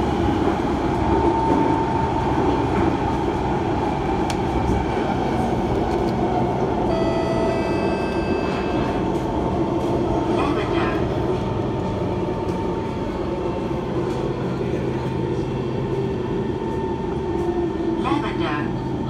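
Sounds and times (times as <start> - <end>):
train wheels rumbling on track: 0.0 - 18.0.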